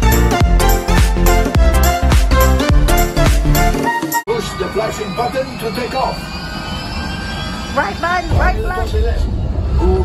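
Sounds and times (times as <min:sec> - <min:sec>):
spaceship engine hum: 0:04.3 - 0:10.0.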